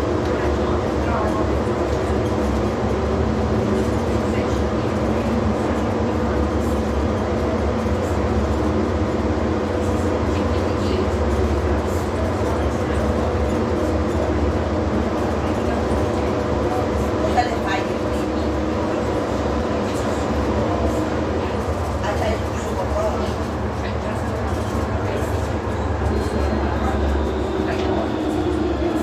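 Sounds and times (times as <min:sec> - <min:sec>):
train low rumble: 0:00.0 - 0:29.0.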